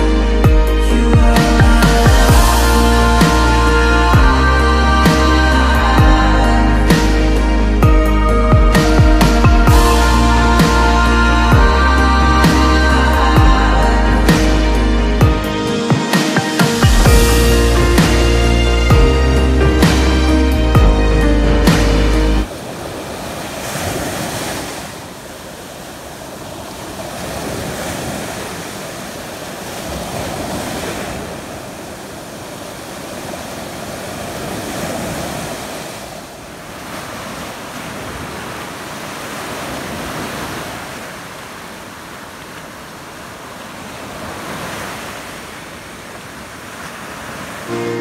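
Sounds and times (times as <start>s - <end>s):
waves breaking on beach: 0.0s - 20.7s, 21.6s - 48.0s.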